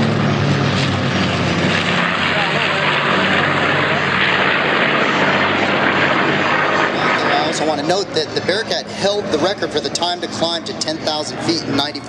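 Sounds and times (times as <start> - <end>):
propeller plane engines droning: 0.0 - 12.0.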